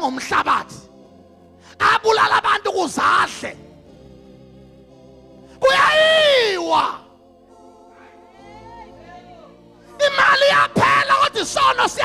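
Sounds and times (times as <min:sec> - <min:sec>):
man shouting through a microphone: 0:00.0 - 0:00.8, 0:01.8 - 0:03.6, 0:05.6 - 0:07.1, 0:08.0 - 0:12.0.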